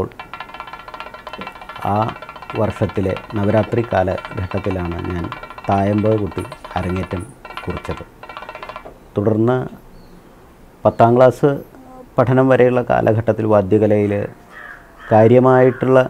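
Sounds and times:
man talking: 0:10.8 - 0:14.4.

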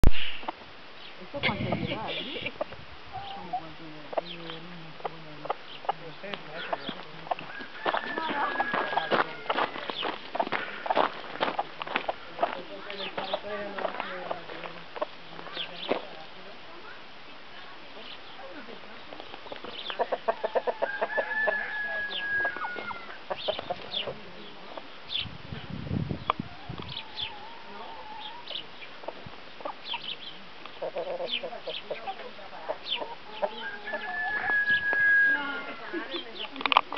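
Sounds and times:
hen clucking: 0:01.4 - 0:16.2, 0:19.0 - 0:25.3, 0:26.2 - 0:36.9.

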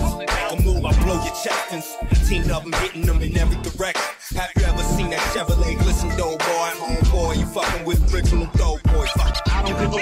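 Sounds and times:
rapping over a beat: 0:00.0 - 0:10.0.

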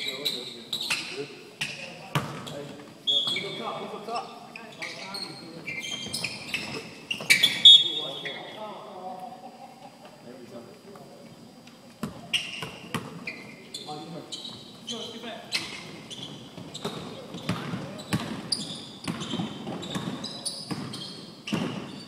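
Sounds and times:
sneakers squeaking: 0:00.0 - 0:08.6, 0:12.0 - 0:22.0
voices echoing in hall: 0:00.0 - 0:22.0
basketball bouncing on hardwood floor: 0:16.6 - 0:21.8.

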